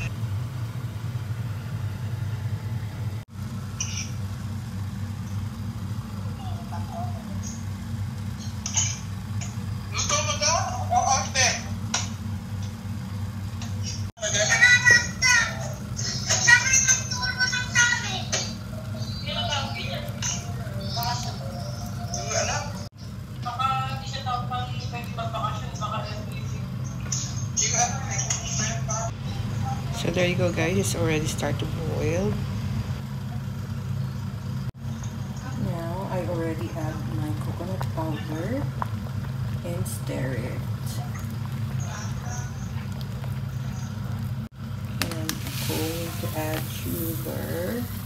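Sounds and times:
low mechanical hum: 0.0 - 48.0
people talking: 6.3 - 7.6, 14.2 - 32.4, 35.4 - 38.8, 39.6 - 43.1, 45.0 - 48.0.

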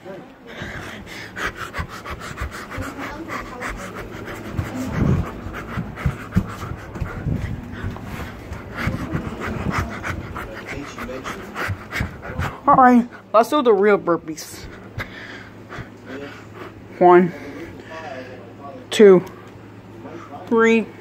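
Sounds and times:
person panting heavily: 0.4 - 13.2, 14.5 - 18.2.

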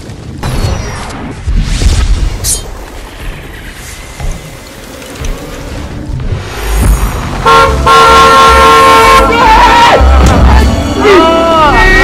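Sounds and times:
car horn blast: 7.4 - 11.0.

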